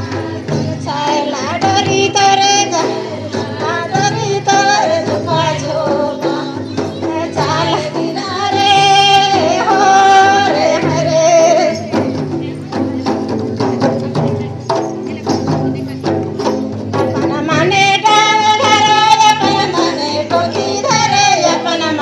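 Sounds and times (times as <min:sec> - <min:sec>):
people singing: 0:00.0 - 0:12.4, 0:17.1 - 0:22.0
hand-beaten barrel drum: 0:00.0 - 0:22.0.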